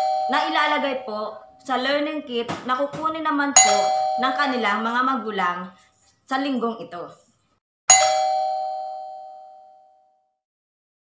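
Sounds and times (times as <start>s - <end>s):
bell-like chime: 0.0s - 0.6s, 3.6s - 4.6s, 7.9s - 10.2s.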